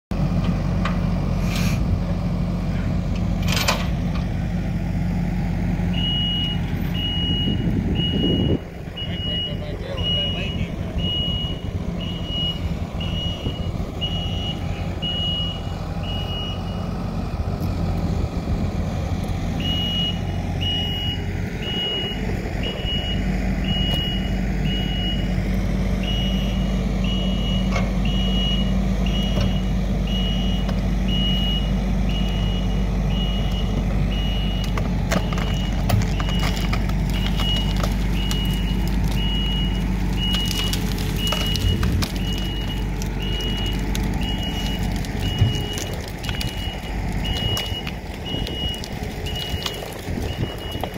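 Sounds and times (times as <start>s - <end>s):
diesel engine running: 0.1s - 50.9s
backup alarm beeping: 5.9s - 16.8s, 19.6s - 25.4s, 26.0s - 50.9s.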